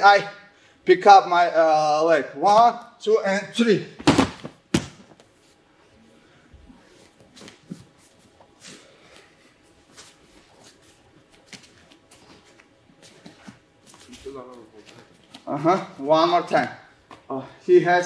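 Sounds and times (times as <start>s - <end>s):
bodies thudding on mat: 4.0s - 5.2s
bare feet shuffling on mat: 6.6s - 16.4s.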